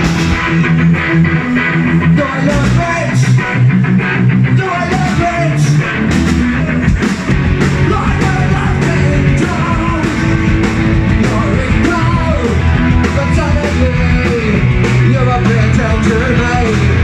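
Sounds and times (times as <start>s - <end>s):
punk rock band playing live: 0.0s - 17.0s
person singing into a microphone: 7.8s - 10.4s, 11.2s - 17.0s.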